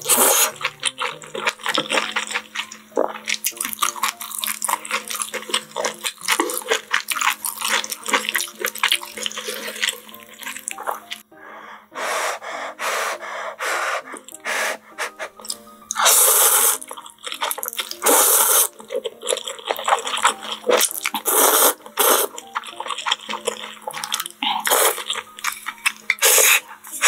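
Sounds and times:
noodle slurps: 0:00.0 - 0:00.8, 0:14.0 - 0:19.0, 0:19.6 - 0:22.4, 0:23.6 - 0:25.2, 0:26.1 - 0:27.0
chewing: 0:00.0 - 0:11.2, 0:15.3 - 0:27.0.

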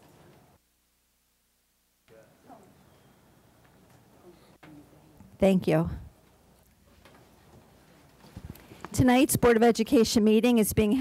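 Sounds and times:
soft knocks and shuffles: 0:06.8 - 0:09.1.

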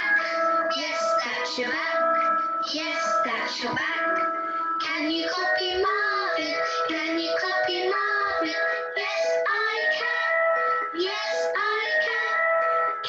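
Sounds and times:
person singing: 0:00.0 - 0:13.0.

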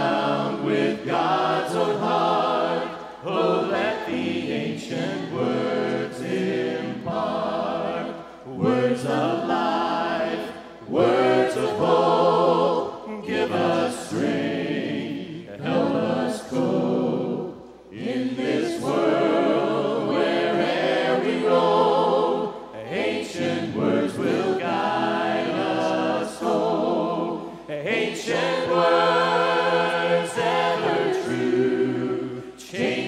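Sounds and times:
choir singing a hymn: 0:00.0 - 0:33.0
singers breathing: 0:27.4 - 0:27.7.

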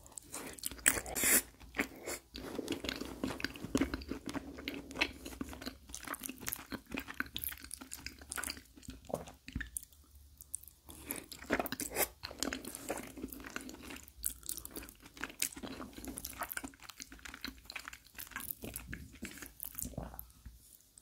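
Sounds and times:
wet chewing: 0:00.0 - 0:20.4.

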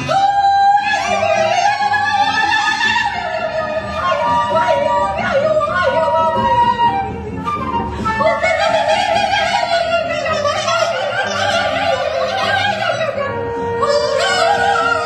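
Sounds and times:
double bass: 0:00.0 - 0:15.0
woodwinds playing gliding lines: 0:00.0 - 0:15.0.

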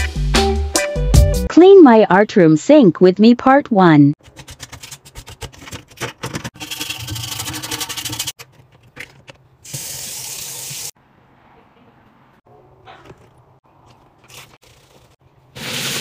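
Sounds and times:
scrubbing and scraping on a sink: 0:04.3 - 0:08.7.

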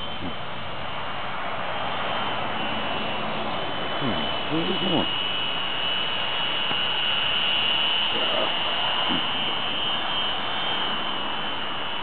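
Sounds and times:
rc helicopter motor whine: 0:00.0 - 0:12.0
hiss: 0:01.1 - 0:12.0.

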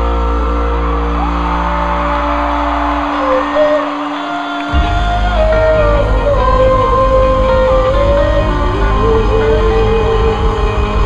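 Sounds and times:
electric guitar lines: 0:00.0 - 0:11.0
live rock band playing: 0:00.0 - 0:11.0.

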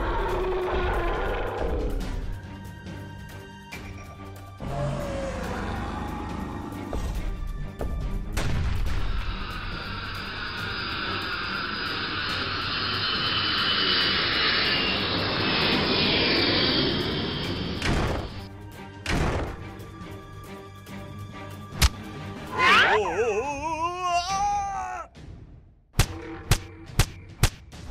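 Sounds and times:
music: 0:00.0 - 0:27.9
energy beam rushing noise: 0:09.3 - 0:18.5.

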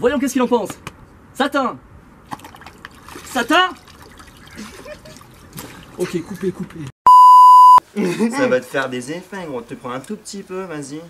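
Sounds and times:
water trickling into a basin: 0:02.4 - 0:06.4.

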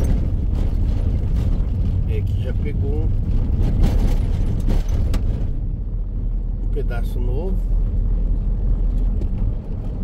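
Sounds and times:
wheels knocking on rough road: 0:00.0 - 0:06.0
van road rumble: 0:00.0 - 0:10.0.

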